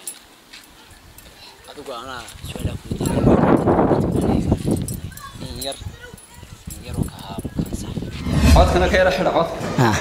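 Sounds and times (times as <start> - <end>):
men talking: 1.6 - 6.0, 6.7 - 10.0.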